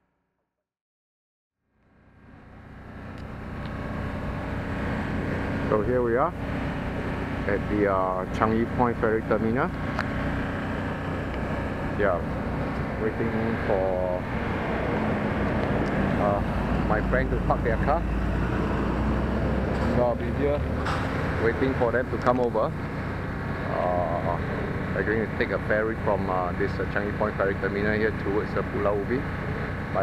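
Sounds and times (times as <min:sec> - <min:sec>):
engine idling: 0:01.8 - 0:30.0.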